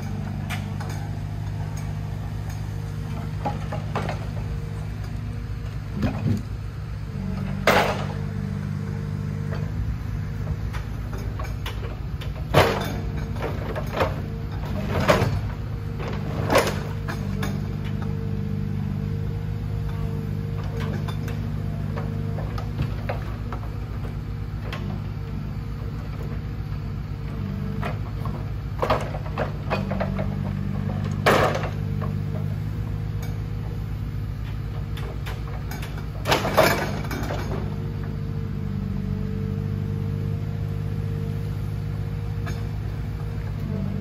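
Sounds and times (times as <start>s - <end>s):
engine running: 0.0s - 44.0s
hydraulic crane working: 0.0s - 44.0s.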